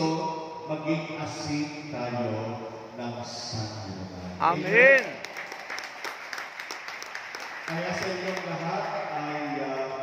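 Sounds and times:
congregation applauding: 4.6s - 10.0s.

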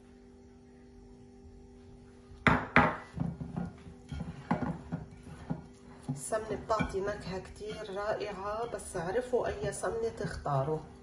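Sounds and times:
glassware knocking: 2.5s - 5.5s
fingers rubbing glass dish: 6.3s - 11.0s.

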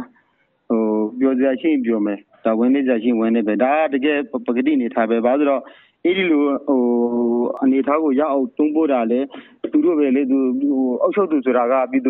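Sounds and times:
man narrating: 0.7s - 12.0s.

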